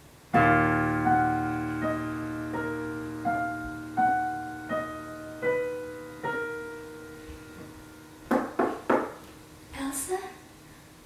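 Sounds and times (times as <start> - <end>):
keyboard piano chord: 0.3 - 9.8
quick knocks: 8.3 - 9.2.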